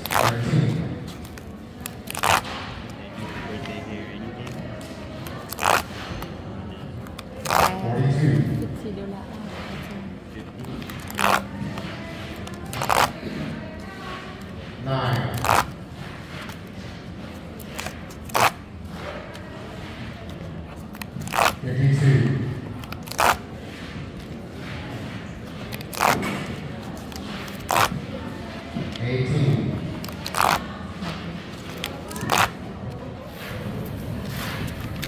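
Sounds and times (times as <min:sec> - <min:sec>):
paper tickets being torn: 0:00.0 - 0:03.0, 0:03.6 - 0:06.3, 0:07.0 - 0:08.0, 0:10.6 - 0:13.3, 0:14.4 - 0:19.4, 0:20.7 - 0:22.1, 0:22.7 - 0:24.3, 0:25.5 - 0:28.0, 0:29.8 - 0:30.8, 0:31.5 - 0:33.0.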